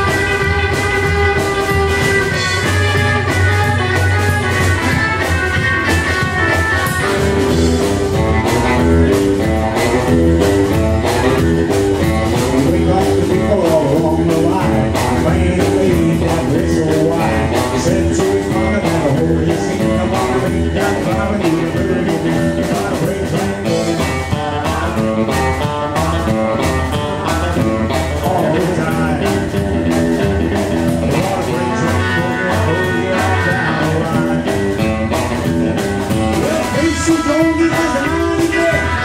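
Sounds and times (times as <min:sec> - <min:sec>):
electric guitar: 0:00.0 - 0:39.0
rock band playing boogie: 0:00.0 - 0:39.0.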